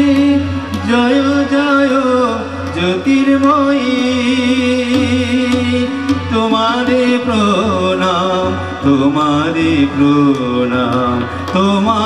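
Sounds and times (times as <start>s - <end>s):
musical accompaniment: 0.0s - 12.0s
person singing devotional song: 0.0s - 12.0s.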